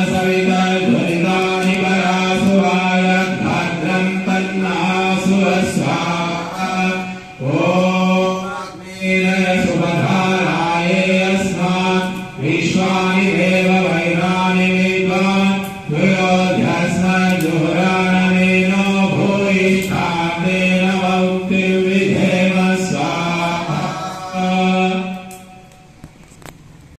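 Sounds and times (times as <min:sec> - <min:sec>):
man chanting into a microphone: 0:00.0 - 0:25.6.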